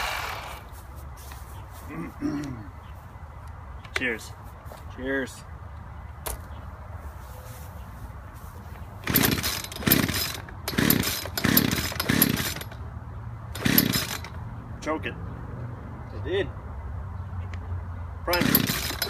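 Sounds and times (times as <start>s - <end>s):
chainsaw recoil starter pulls: 9.0s - 12.8s, 13.6s - 14.4s, 18.3s - 19.0s.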